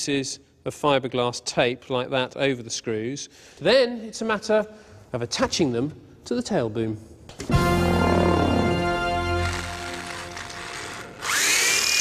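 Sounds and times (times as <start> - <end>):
power tool motor whine: 8.2 - 12.0.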